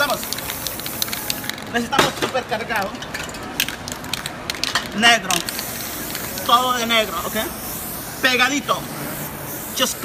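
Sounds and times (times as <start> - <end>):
spray can clicking: 0.0 - 1.6, 3.6 - 6.6
spray paint can hissing: 0.0 - 1.7, 5.3 - 10.0.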